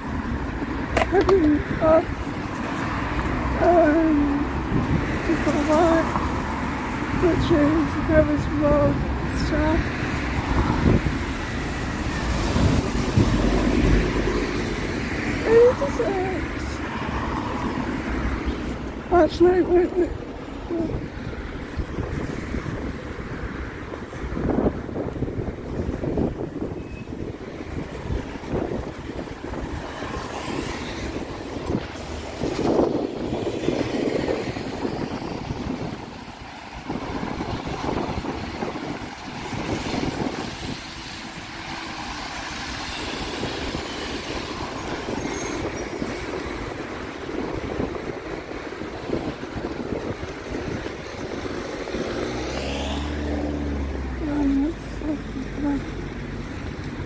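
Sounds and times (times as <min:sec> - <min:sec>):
traffic on a wet road: 0:00.0 - 0:57.0.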